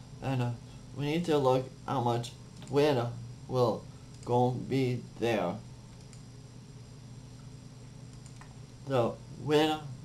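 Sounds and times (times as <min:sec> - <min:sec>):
faint electrical hum: 0:00.0 - 0:10.0
low hiss: 0:00.0 - 0:10.0.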